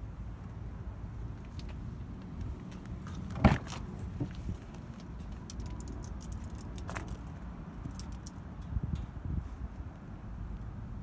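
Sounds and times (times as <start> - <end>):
car door latch clunk: 3.3 - 3.8.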